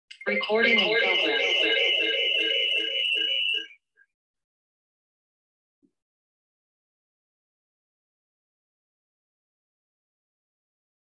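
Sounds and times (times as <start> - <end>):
voice-like electronic sound: 0.2 - 3.6
steady high tone: 0.2 - 3.7.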